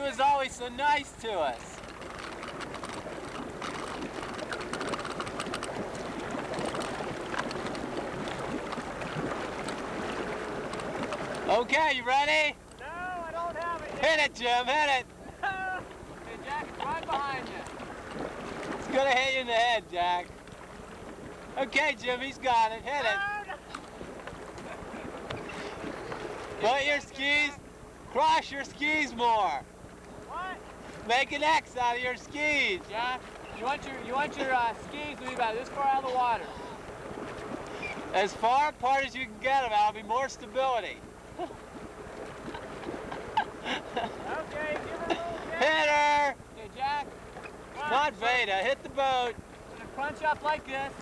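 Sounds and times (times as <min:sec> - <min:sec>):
motorboat engine running: 0:00.0 - 0:51.0
water lapping and splashing: 0:00.0 - 0:51.0.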